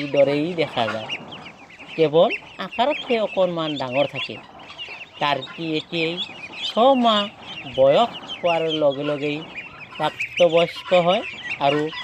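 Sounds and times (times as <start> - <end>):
high-pitched poultry peeps: 0.0 - 12.0
poultry calls rising and falling: 0.0 - 12.0.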